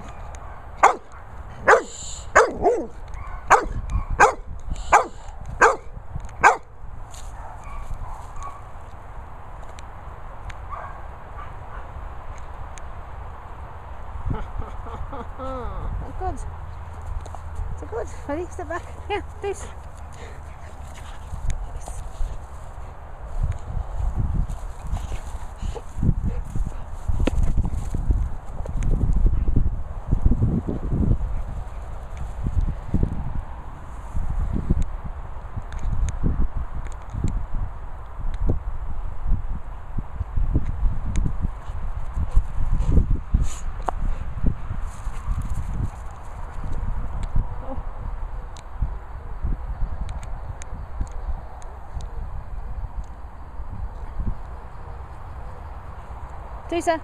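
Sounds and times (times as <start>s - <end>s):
wind on microphone: 0.0s - 8.8s, 14.0s - 57.0s
dog barking: 0.1s - 6.7s, 7.4s - 8.7s, 10.7s - 11.9s.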